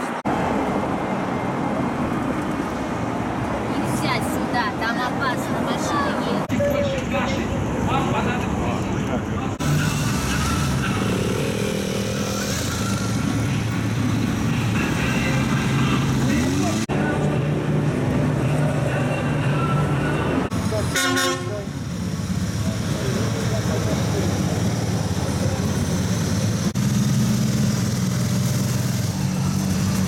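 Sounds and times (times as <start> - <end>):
motorcycle engines running: 8.8 - 16.9, 22.0 - 30.0
motorcycle engine revving: 9.6 - 16.9, 23.4 - 30.0.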